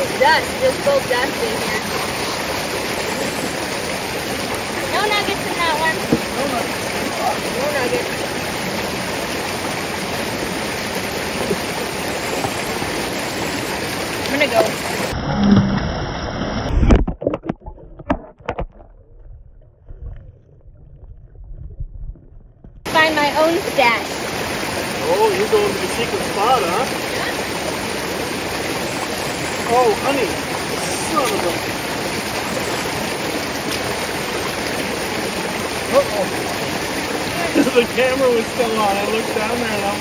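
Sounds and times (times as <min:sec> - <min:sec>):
water rushing over stones: 0:00.0 - 0:18.8, 0:22.8 - 0:40.0.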